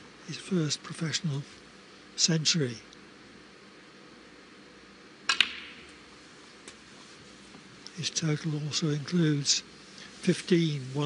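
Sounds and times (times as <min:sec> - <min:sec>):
cue striking ball: 0:05.3 - 0:06.0.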